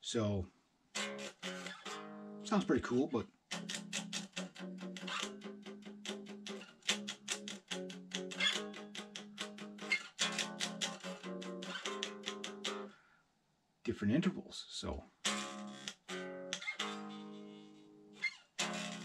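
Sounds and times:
electric guitar picked notes: 1.0s - 2.9s, 3.5s - 12.9s, 15.2s - 19.0s.

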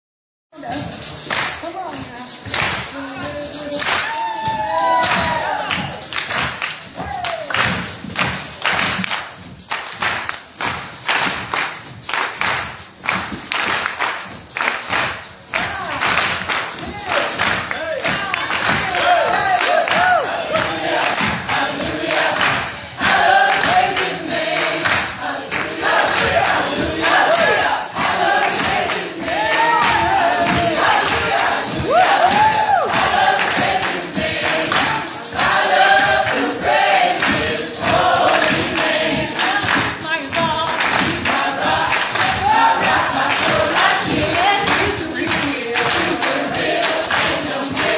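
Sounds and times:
gospel music: 0.6s - 47.9s
people clapping in time: 0.6s - 47.9s.

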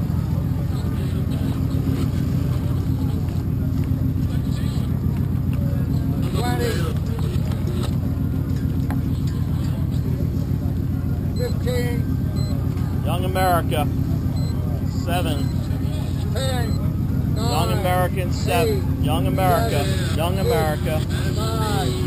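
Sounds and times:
faint voices: 0.0s - 22.0s
low engine drone: 0.0s - 22.0s.

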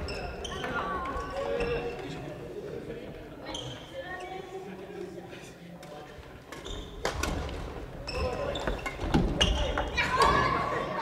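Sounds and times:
sneaker squeaks: 0.0s - 2.0s, 3.4s - 4.4s, 6.6s - 7.2s, 8.0s - 10.5s.

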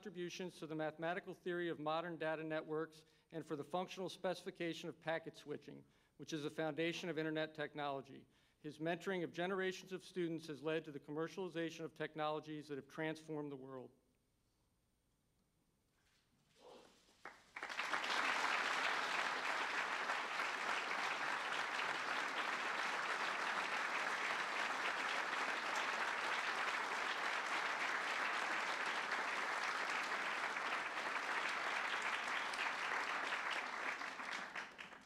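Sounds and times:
audience applause: 17.2s - 35.0s.

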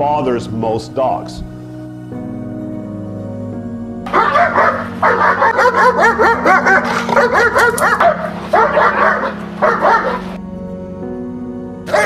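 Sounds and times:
dog barking rapidly: 4.1s - 10.4s.

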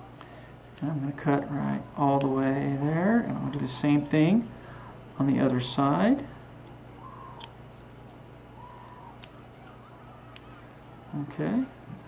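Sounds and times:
steady low hum: 0.0s - 12.0s
scissors snipping clicks: 7.3s - 7.6s, 8.6s - 9.4s, 10.3s - 10.9s.

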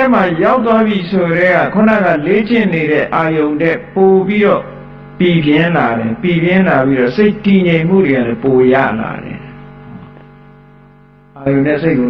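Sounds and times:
man chanting a sermon: 0.0s - 9.6s.

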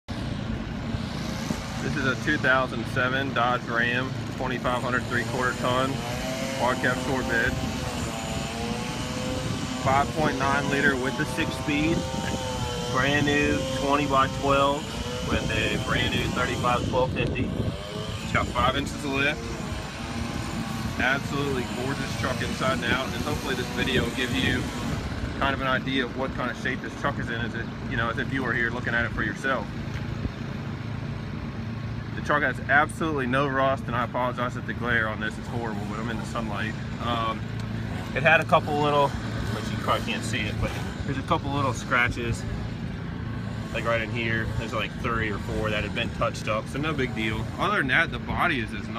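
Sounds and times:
diesel engine idling: 1.8s - 48.9s.

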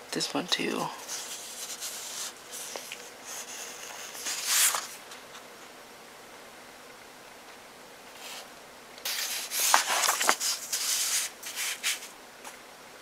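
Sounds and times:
paper pages rustling: 1.0s - 5.5s, 9.1s - 12.1s.

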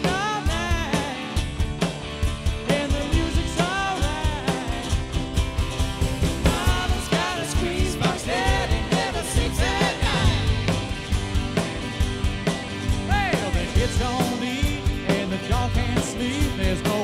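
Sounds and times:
drum kit: 0.0s - 17.0s
electric guitar: 0.0s - 17.0s.

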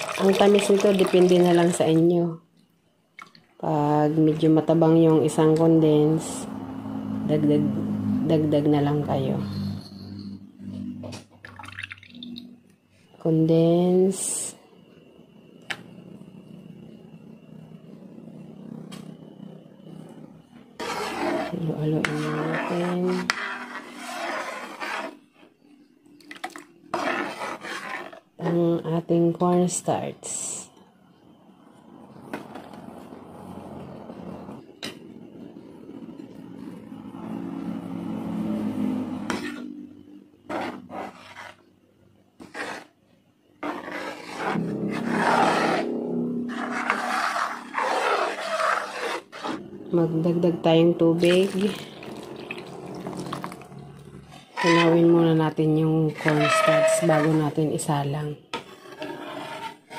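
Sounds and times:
metal spatula scraping pan: 20.6s - 25.6s, 26.4s - 28.8s, 38.5s - 41.7s, 42.4s - 43.0s, 43.6s - 49.7s, 51.2s - 59.9s.

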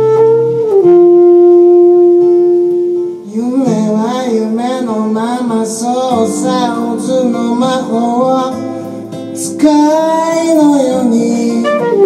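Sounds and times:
saxophone long note: 0.0s - 3.9s, 10.3s - 12.0s
acoustic guitar: 0.0s - 12.0s.

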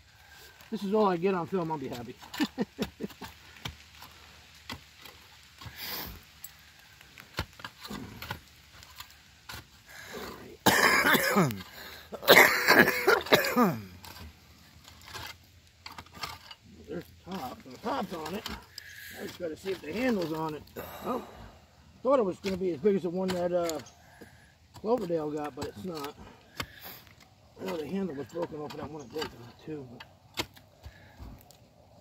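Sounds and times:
man coughing hard: 10.6s - 11.6s, 12.2s - 13.9s.

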